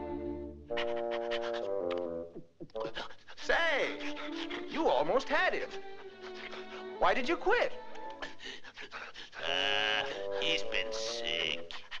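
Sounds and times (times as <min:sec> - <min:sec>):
cartoon voice wailing: 0:00.7 - 0:01.7.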